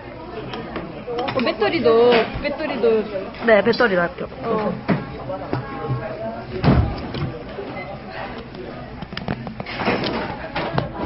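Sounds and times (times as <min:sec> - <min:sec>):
indistinct restaurant voices: 0:00.0 - 0:11.0.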